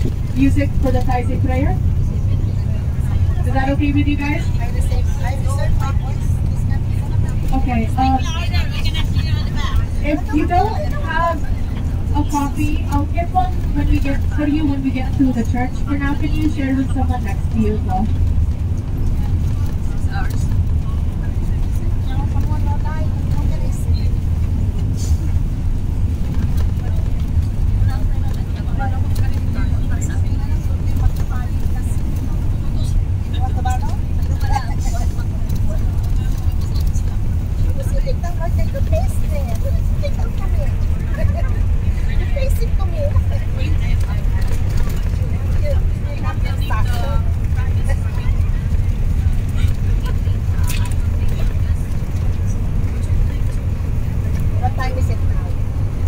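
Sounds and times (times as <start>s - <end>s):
bus engine drone: 0.0s - 56.0s
passengers chatting: 0.0s - 56.0s.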